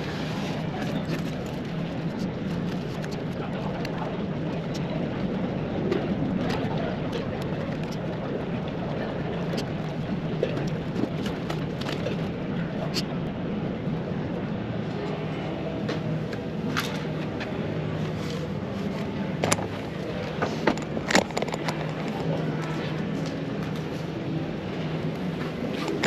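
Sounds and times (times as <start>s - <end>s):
indistinct voices: 0.0s - 26.0s
steady low hum: 0.0s - 26.0s
small clicks and knocks: 20.6s - 23.9s.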